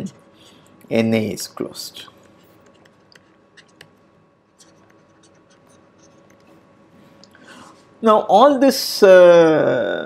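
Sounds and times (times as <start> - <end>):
stylus scratching on tablet: 2.2 - 6.6.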